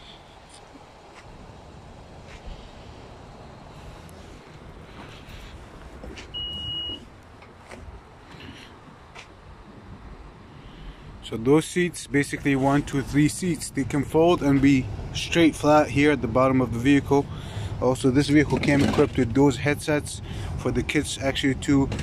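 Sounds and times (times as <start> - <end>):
high tailgate beep: 6.3 - 7.1.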